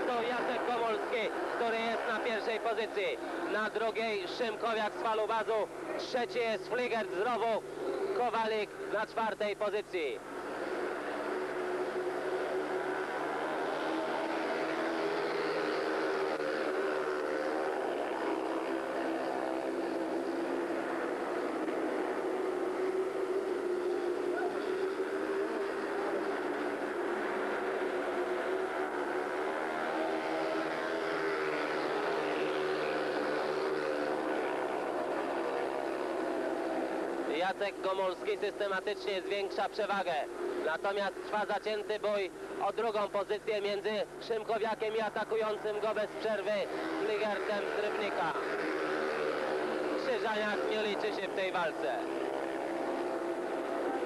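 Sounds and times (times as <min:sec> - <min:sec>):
motorcycle engines racing: 0:00.0 - 0:54.0.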